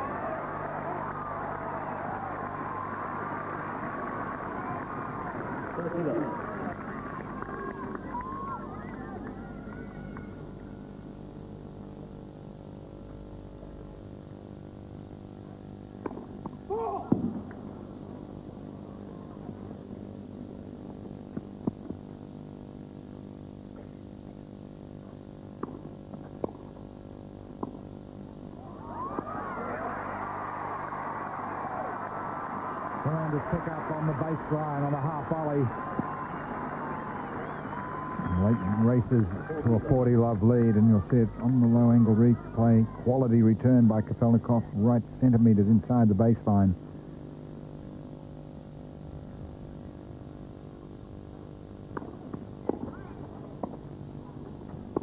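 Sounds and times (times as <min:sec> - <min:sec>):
crowd cheering and applause: 0:00.0 - 0:10.7, 0:28.6 - 0:43.1
crowd voices: 0:00.0 - 0:11.0, 0:28.6 - 0:44.8.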